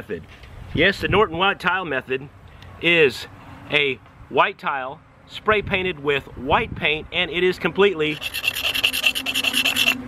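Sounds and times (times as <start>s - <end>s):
knife scraping ceramic tile: 8.1s - 10.0s.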